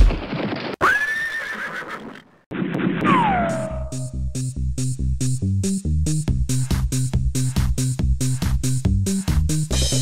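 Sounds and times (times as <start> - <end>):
horse whinnying: 0.8 - 2.2.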